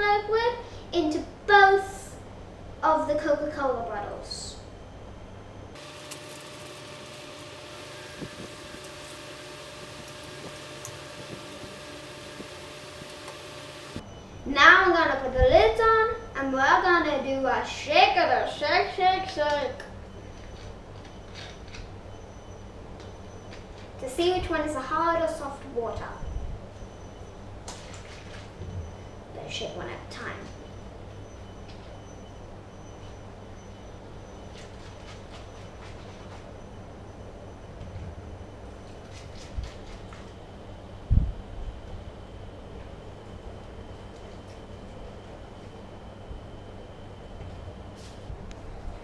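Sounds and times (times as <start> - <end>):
faint hum: 0.0 - 49.0.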